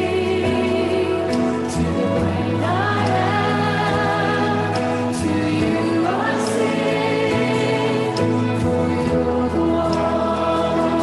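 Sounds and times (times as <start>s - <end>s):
worship song with held notes: 0.0s - 11.0s.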